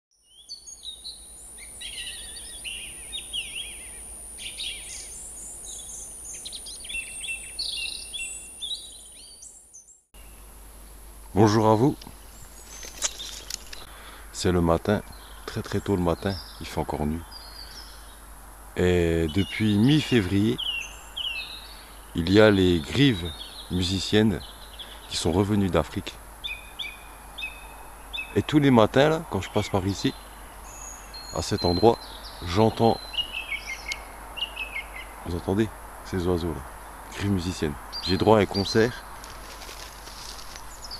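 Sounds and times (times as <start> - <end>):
song thrush singing: 0.1 - 10.6, 11.3 - 40.9.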